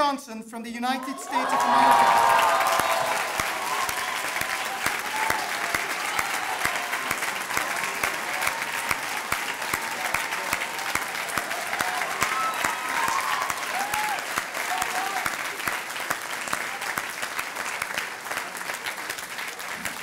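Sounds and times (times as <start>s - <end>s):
large audience applauding: 1.0s - 20.0s.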